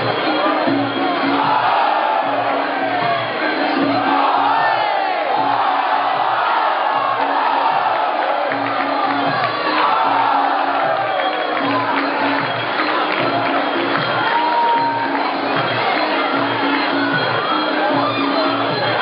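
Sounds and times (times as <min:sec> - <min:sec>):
crowd shouting and cheering: 0:00.0 - 0:19.0
repeating drum pattern: 0:00.0 - 0:19.0.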